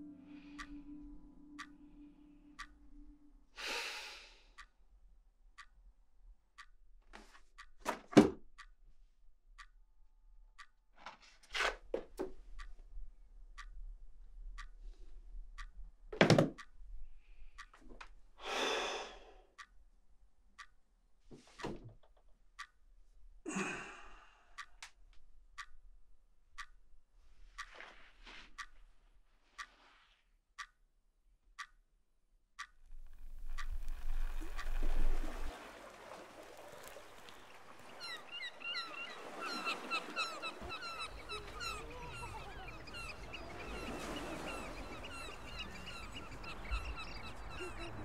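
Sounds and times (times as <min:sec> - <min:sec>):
wall clock ticking: 0:00.0 - 0:01.9, 0:02.5 - 0:04.8, 0:05.5 - 0:22.9, 0:24.5 - 0:29.9, 0:30.6 - 0:30.9, 0:31.6 - 0:31.9, 0:32.6 - 0:35.5, 0:36.7 - 0:48.0
low held musical note: 0:00.0 - 0:03.4
man sighing: 0:18.4 - 0:19.3, 0:23.5 - 0:24.6.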